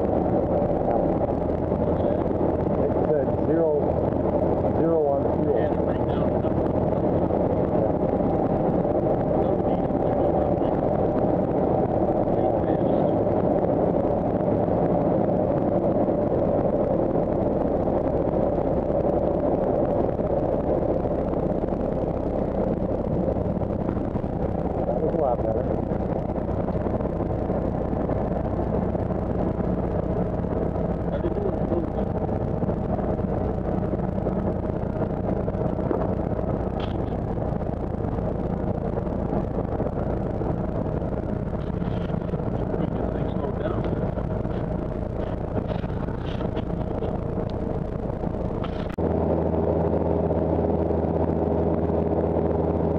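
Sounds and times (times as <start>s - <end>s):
airplane engine drone in cabin: 0.0s - 52.9s.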